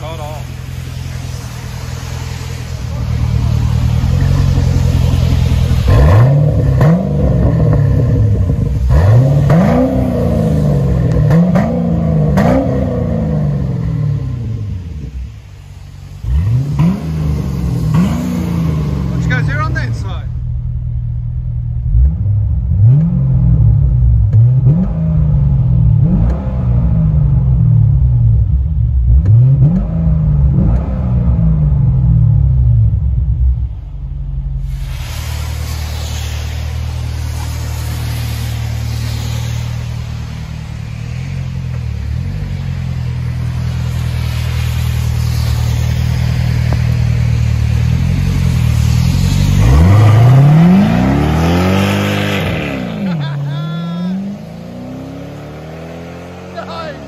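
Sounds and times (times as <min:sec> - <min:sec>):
car engine idling and revving: 0:00.0 - 0:57.0.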